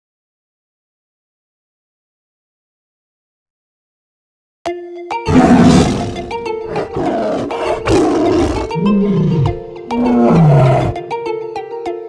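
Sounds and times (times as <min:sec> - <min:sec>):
children's song music: 0:04.7 - 0:12.0
lion roar: 0:05.3 - 0:11.0.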